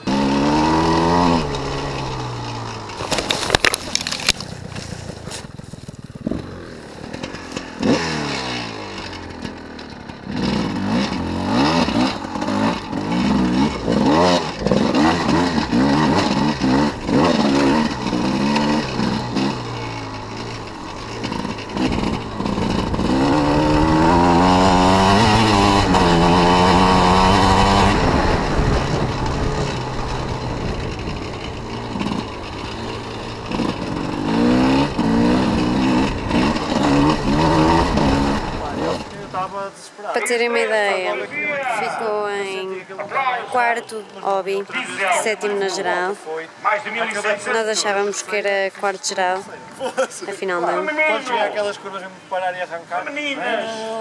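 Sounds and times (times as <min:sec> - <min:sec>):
motorcycle engine revving: 0:00.0 - 0:42.8.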